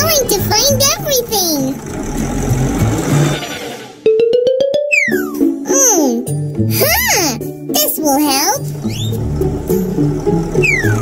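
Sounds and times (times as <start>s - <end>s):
rising tone with rapid ticking: 8.8s - 11.0s
falling whistle: 10.6s - 11.0s.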